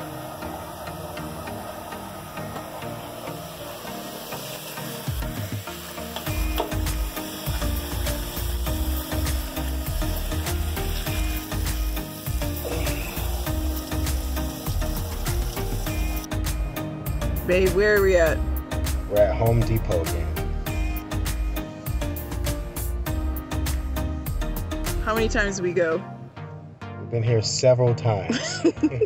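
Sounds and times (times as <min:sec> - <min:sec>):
running water hissing: 0:00.0 - 0:24.7
deep regular beat: 0:00.0 - 0:25.6
background music: 0:00.0 - 0:29.0.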